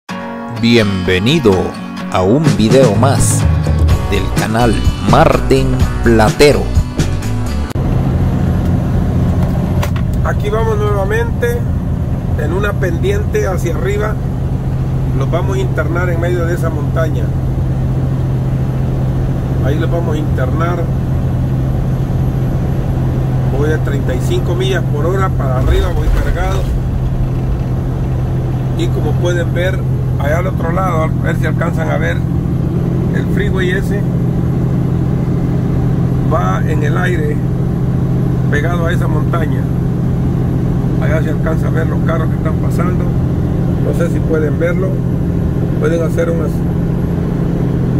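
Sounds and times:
road noise: 0:02.3 - 0:47.9
truck diesel engine under load: 0:07.8 - 0:47.9.

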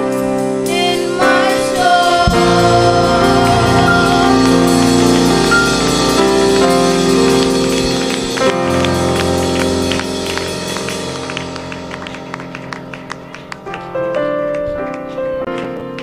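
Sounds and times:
band playing sustained chords: 0:00.0 - 0:14.5
hand claps: 0:08.0 - 0:16.0.

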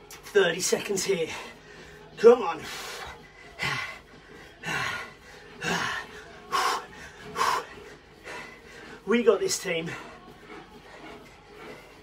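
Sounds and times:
man breathing hard: 0:01.3 - 0:09.1.

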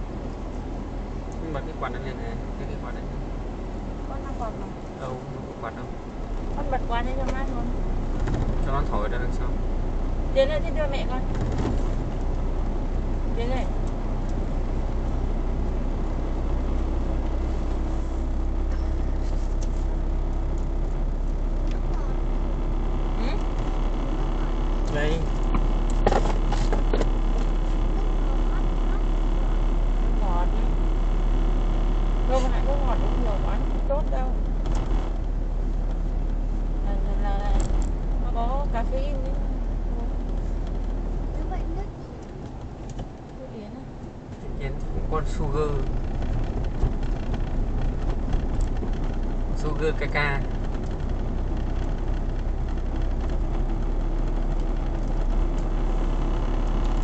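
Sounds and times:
car engine and tyre rumble: 0:00.0 - 0:57.0
people talking: 0:01.4 - 0:03.2, 0:04.1 - 0:05.9, 0:06.6 - 0:07.8, 0:08.7 - 0:09.6, 0:10.4 - 0:11.4, 0:13.3 - 0:13.8, 0:21.8 - 0:22.2, 0:23.2 - 0:23.4, 0:24.1 - 0:25.3, 0:28.0 - 0:29.2, 0:30.2 - 0:30.8, 0:32.3 - 0:34.4, 0:36.9 - 0:40.2, 0:41.4 - 0:42.2, 0:43.4 - 0:43.9, 0:44.5 - 0:45.9, 0:49.6 - 0:50.5.

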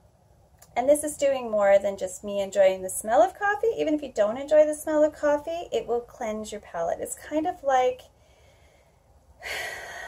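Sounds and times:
woman breathing in: 0:08.2 - 0:10.0.

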